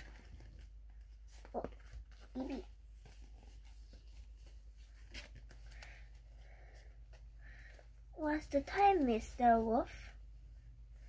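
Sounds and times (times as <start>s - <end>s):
book pages rustling: 0.0s - 10.2s.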